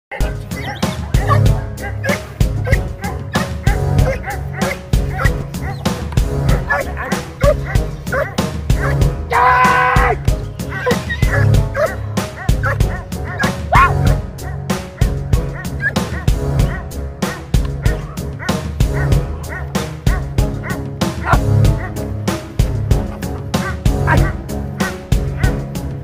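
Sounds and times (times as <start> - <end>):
dog barking: 0.1 - 5.9, 6.5 - 9.1, 10.7 - 22.0, 23.1 - 25.6
background music with steady beat: 0.1 - 26.0
dog's drawn-out high cry: 12.6 - 14.1.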